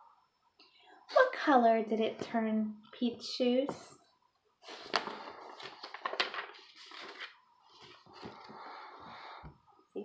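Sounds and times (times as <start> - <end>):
rustling of handling: 4.6 - 8.7.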